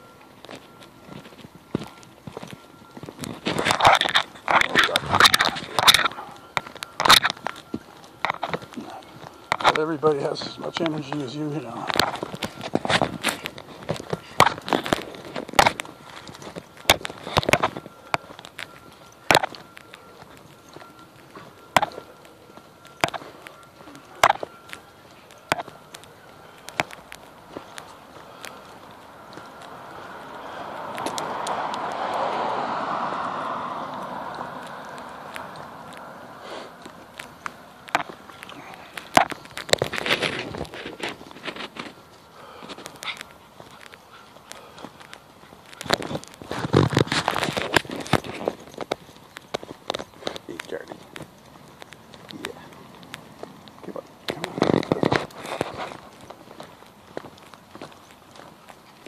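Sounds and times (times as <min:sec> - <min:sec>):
car passing: 0:00.0 - 0:59.0
footsteps on concrete sidewalk: 0:00.0 - 0:59.0.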